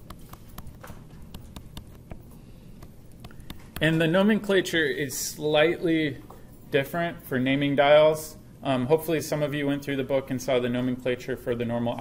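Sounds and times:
stylus clicking on tablet screen: 0.0 - 3.9
low room hum: 0.0 - 12.0.

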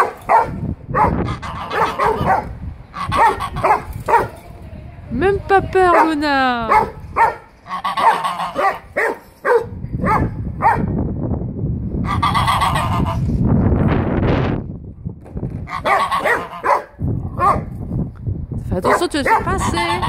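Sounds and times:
geese honking: 1.2 - 3.9, 7.6 - 8.8, 12.0 - 13.2, 15.7 - 16.8, 19.4 - 20.0.

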